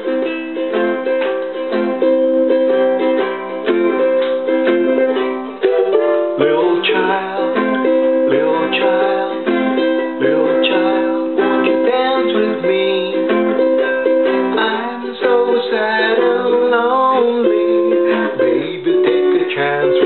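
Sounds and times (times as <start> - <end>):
strummed ukulele: 0.0 - 20.0.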